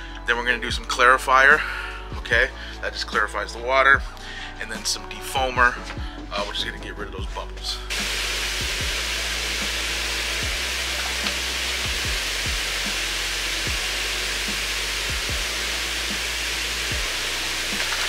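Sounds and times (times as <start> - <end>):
hot tub jets churning water: 8.0 - 18.0.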